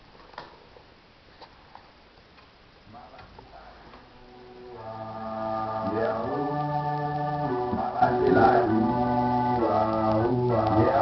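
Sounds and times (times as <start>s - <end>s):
music with strong bass: 4.3s - 11.0s.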